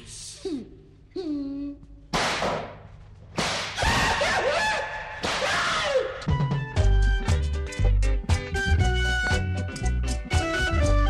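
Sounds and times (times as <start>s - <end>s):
whip cracks: 2.1s - 4.5s, 5.1s - 6.1s.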